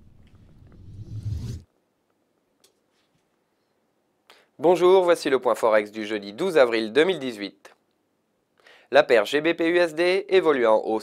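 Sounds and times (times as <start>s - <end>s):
deep rumbling whoosh: 0.0s - 1.6s
hissing sweep: 0.0s - 1.6s.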